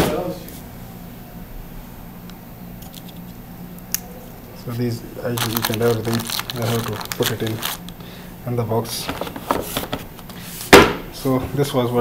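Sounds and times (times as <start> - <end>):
soft handling noises: 4.6 - 8.0.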